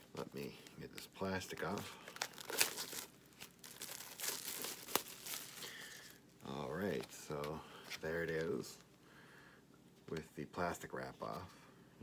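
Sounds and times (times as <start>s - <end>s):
sharp plastic crackle: 0.0s - 6.2s
plastic shrink wrap crinkling: 0.0s - 7.3s.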